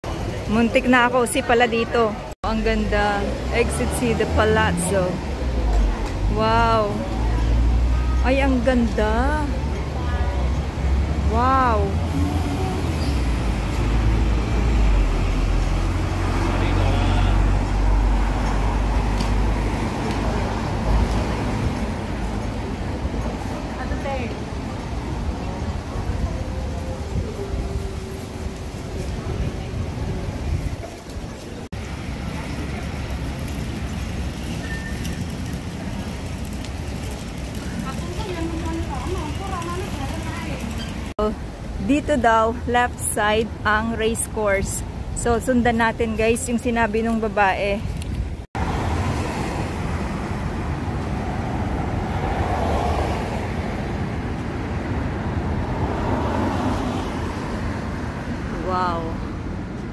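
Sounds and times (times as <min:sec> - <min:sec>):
faint voices of passers-by: 0:00.0 - 0:48.1
road traffic rumble: 0:00.0 - 0:59.9.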